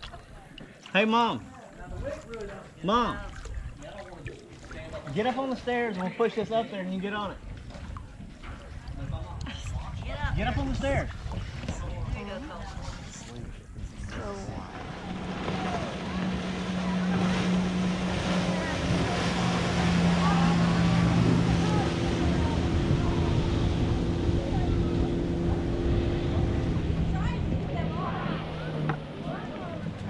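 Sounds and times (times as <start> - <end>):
motorboat engine droning: 0.1 - 30.0
wind on microphone: 7.4 - 30.0.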